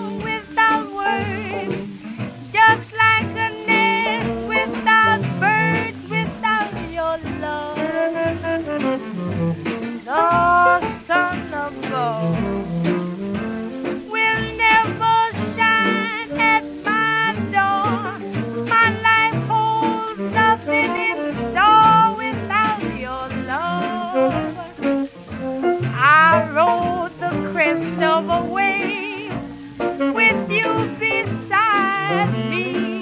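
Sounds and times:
upbeat swing music: 0.0 - 33.0.

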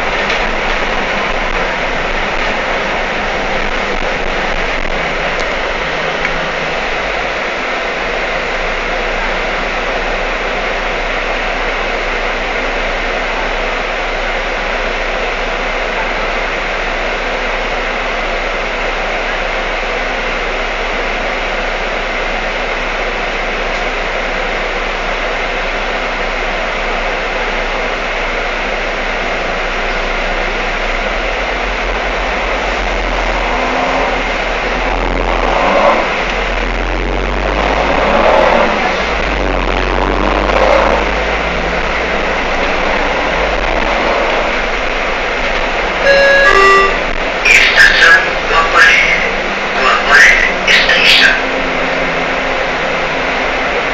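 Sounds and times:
deep low rumble: 0.0 - 10.5, 30.7 - 46.1
bus engine and road noise: 0.0 - 53.9
electronic tones: 46.0 - 48.3.

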